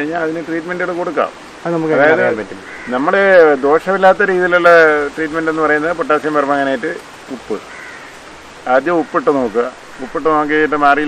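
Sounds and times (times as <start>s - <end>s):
man speaking: 0.0s - 7.6s, 8.7s - 11.0s
faint bird call: 2.0s - 3.1s, 7.6s - 8.3s.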